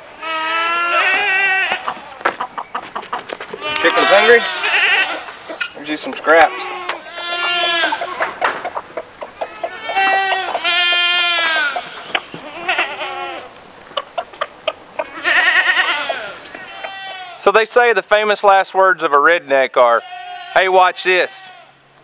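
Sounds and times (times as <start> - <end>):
goats bleating: 0.0 - 2.5, 3.4 - 13.6, 15.0 - 17.5, 19.8 - 21.8.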